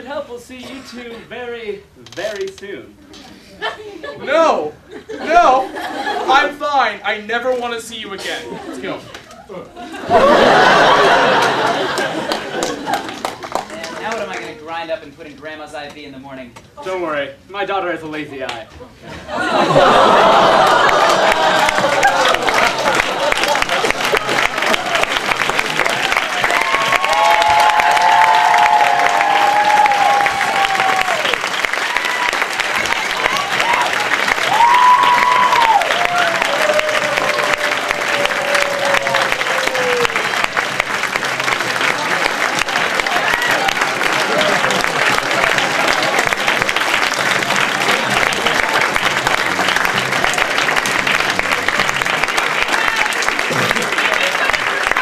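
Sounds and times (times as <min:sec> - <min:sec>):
audience applauding: 0:09.9 - 0:14.6, 0:19.4 - 0:55.0
cheering calls: 0:10.0 - 0:13.0, 0:19.3 - 0:55.0.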